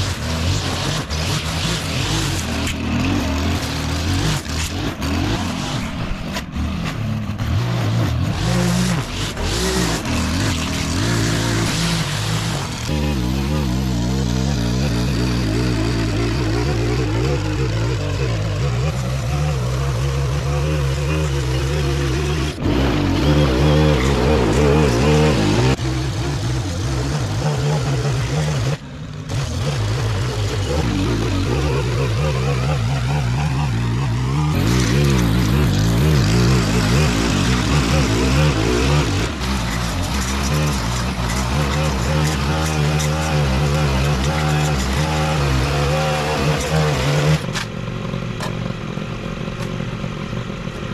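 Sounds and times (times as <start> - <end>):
blade cutting along concrete: 0.0 - 48.6
edger engine running: 0.0 - 50.9.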